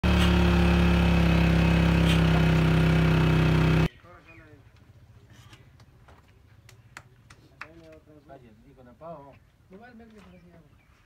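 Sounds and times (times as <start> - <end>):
engine running steadily: 0.0 - 3.9.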